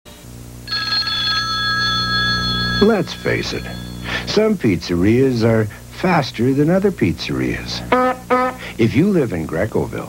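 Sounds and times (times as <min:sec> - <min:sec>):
constant low hum: 0:00.1 - 0:10.0
high electronic chord: 0:00.6 - 0:04.5.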